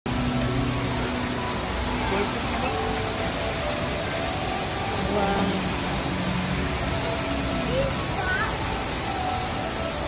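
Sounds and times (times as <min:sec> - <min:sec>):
waterfall rushing: 0:00.1 - 0:10.0.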